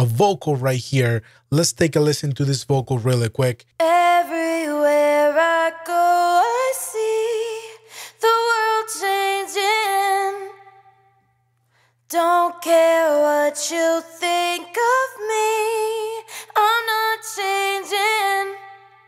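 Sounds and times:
woman singing a cappella: 0:03.8 - 0:11.2, 0:12.1 - 0:19.0.

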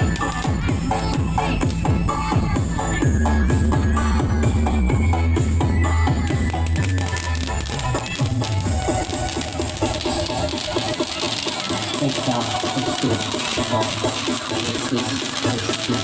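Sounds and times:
spark fountains hissing and crackling: 0:00.0 - 0:01.9, 0:06.2 - 0:16.0
electronic dance music: 0:00.0 - 0:16.0
voices: 0:05.9 - 0:16.0.

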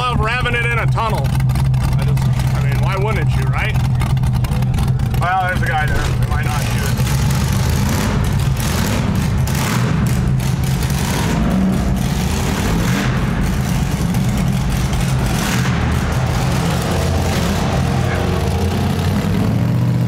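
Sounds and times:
engine running at low revs: 0:00.0 - 0:20.0.

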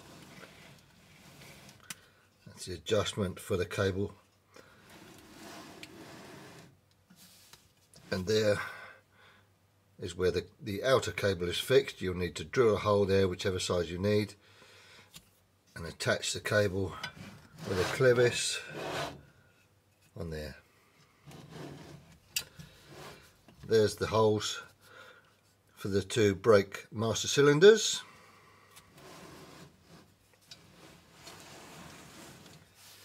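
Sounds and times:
metal box sliding on table: 0:00.0 - 0:01.8, 0:04.8 - 0:07.4, 0:17.0 - 0:19.3, 0:21.3 - 0:22.1, 0:22.8 - 0:23.4, 0:28.9 - 0:33.0.

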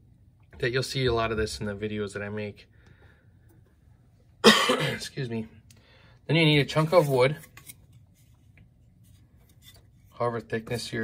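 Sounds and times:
man coughing: 0:04.4 - 0:05.1.

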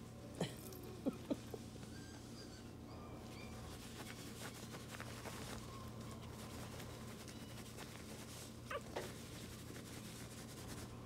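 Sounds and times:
puppy yelping: 0:01.8 - 0:06.3.

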